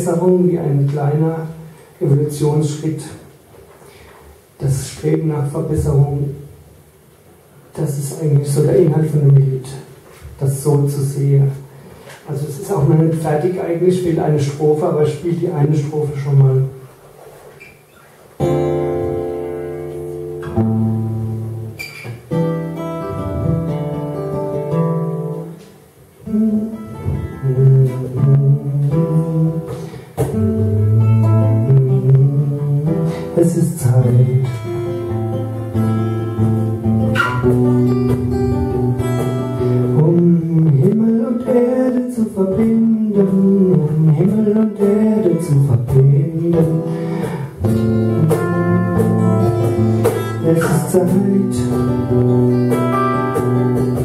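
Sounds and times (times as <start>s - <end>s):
acoustic guitar playing: 16.7s - 54.0s
cajon drumming: 18.4s - 54.0s.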